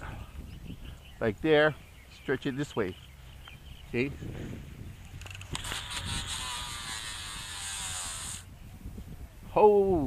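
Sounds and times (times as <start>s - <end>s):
fishing reel spool whirring: 5.3s - 8.5s.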